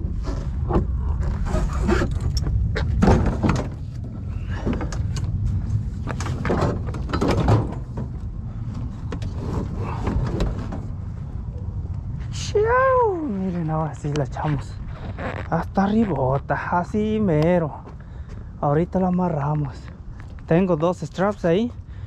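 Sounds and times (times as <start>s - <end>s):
cart knocking and scraping on truck bed: 0.2s - 5.0s, 6.0s - 8.2s.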